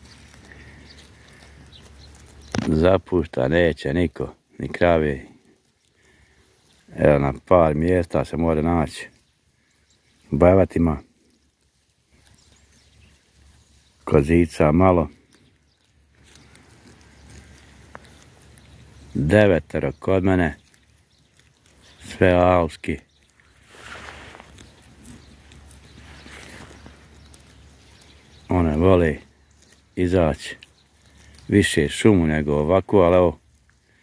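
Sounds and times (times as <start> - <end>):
faint rustling: 0.0 - 34.0.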